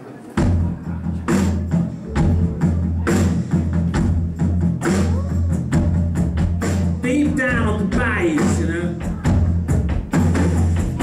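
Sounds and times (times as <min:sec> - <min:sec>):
low bass notes: 0:00.4 - 0:11.0
blues rock band playing: 0:01.3 - 0:11.0.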